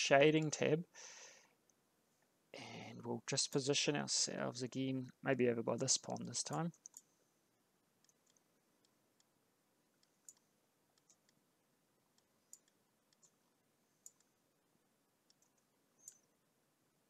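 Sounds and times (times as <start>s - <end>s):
computer mouse clicking: 6.1s - 7.1s, 8.0s - 9.4s, 10.0s - 11.4s, 12.1s - 13.4s, 14.0s - 14.4s, 15.2s - 16.3s.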